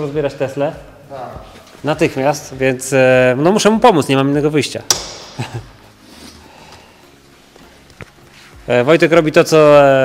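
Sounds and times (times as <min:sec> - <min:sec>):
sharp click: 0:04.9 - 0:05.4
faint handling noise: 0:07.5 - 0:08.7.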